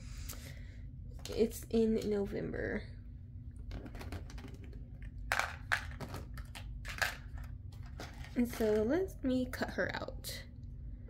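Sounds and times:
packaging rustling and clicking: 3.8s - 8.7s.

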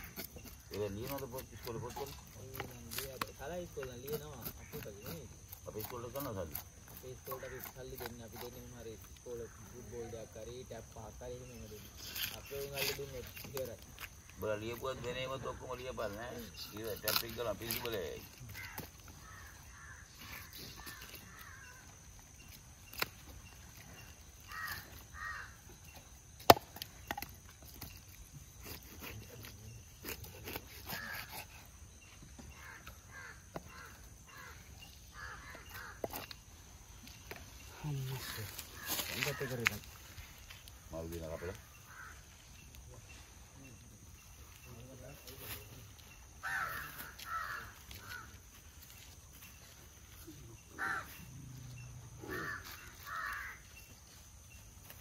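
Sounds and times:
crows cawing: 7.3s - 8.1s, 18.4s - 22.1s, 24.4s - 25.8s, 30.8s - 31.4s, 32.4s - 36.4s, 38.2s - 40.1s, 41.3s - 42.6s, 46.4s - 49.0s, 50.7s - 51.3s, 52.2s - 53.9s
bird calling: 11.5s - 28.0s, 30.4s - 43.2s, 45.5s - 49.1s, 49.7s - 54.2s.

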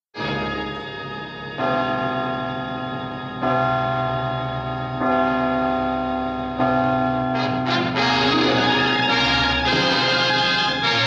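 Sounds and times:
orchestral music with full chords: 0.2s - 1.6s, 7.4s - 11.0s.

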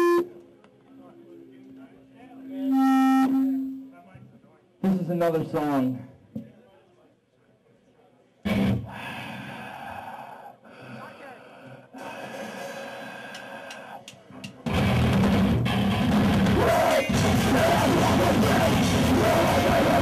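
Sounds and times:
crowd noise: 0.0s - 20.0s
heavy rock band playing: 14.7s - 20.0s.

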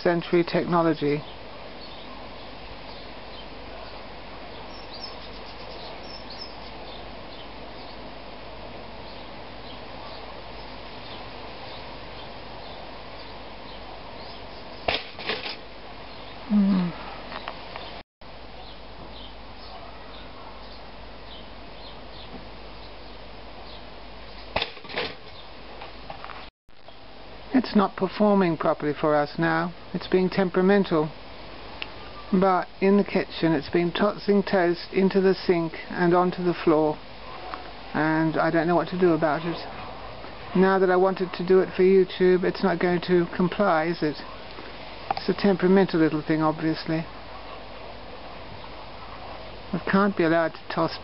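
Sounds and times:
outdoor background noise: 0.0s - 51.0s.

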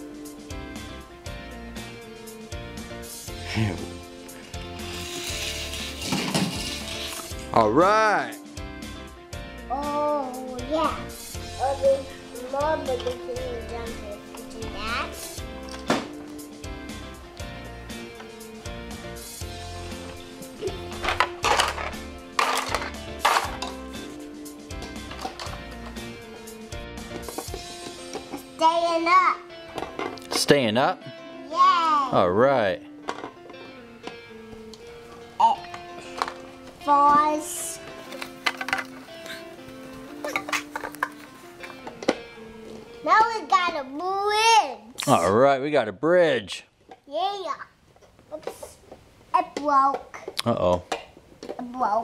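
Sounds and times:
background music: 0.0s - 52.0s
toy car rolling on plastic track: 4.8s - 7.4s, 21.0s - 23.6s.

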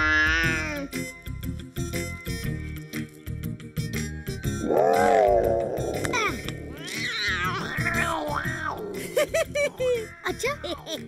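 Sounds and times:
cartoon cat yowling: 0.0s - 0.9s, 4.7s - 8.8s
background music with steady beat: 0.6s - 11.0s.

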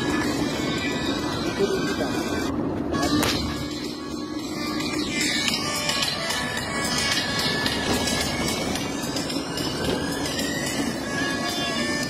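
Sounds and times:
music playing: 0.0s - 12.0s
vehicle road and engine noise: 0.0s - 12.0s.

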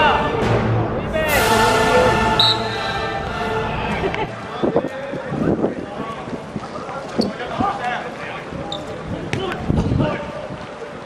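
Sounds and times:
players shouting: 0.0s - 5.4s.

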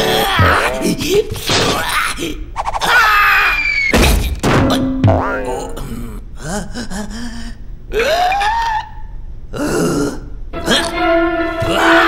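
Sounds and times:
cartoon character grunts and groans: 0.0s - 3.2s, 5.4s - 11.0s.

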